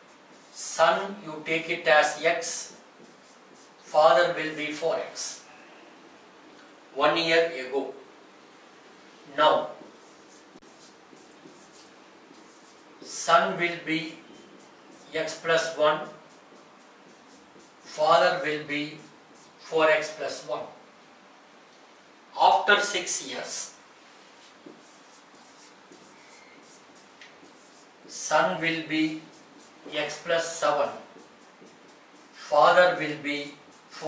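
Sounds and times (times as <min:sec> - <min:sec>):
marker pen writing on whiteboard: 0:00.0 - 0:05.6, 0:09.3 - 0:20.8, 0:22.4 - 0:34.0.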